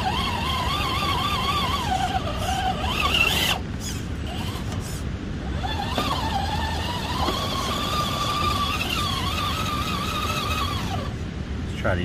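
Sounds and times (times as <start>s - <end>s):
electric motor whining: 0.0s - 11.2s.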